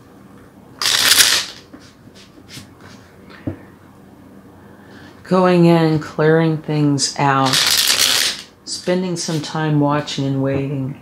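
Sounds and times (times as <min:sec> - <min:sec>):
cards riffling: 0:00.8 - 0:01.6, 0:07.5 - 0:08.5.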